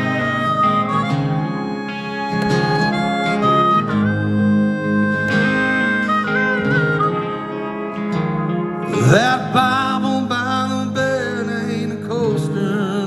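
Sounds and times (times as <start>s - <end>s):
acoustic guitar: 0.0s - 13.0s
harmonica melody: 0.0s - 13.0s.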